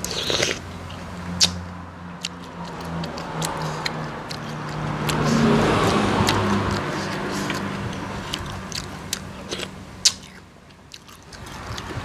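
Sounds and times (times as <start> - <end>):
chewing and crunching food: 0.0 - 12.0.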